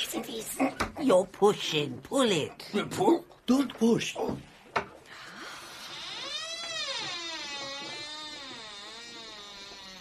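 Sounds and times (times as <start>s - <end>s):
door creaking open: 5.7s - 10.0s.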